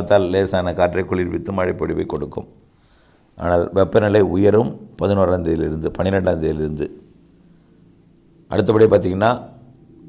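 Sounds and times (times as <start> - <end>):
man narrating: 0.0 - 2.5, 3.4 - 7.1, 8.5 - 9.6
faint low hum: 0.0 - 10.0.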